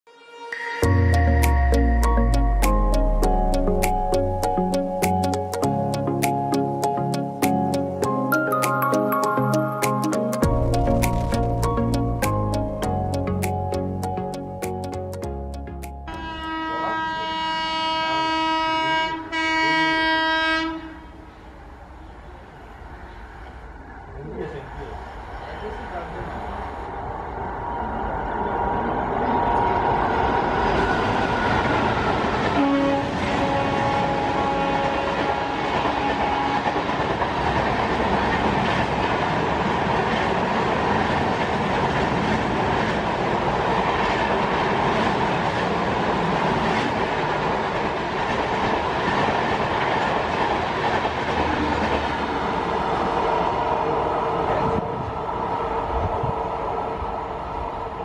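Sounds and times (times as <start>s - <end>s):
train horn: 16.1s - 21.3s, 32.4s - 37.0s
train coaches rumbling and clacking: 21.5s - 58.0s.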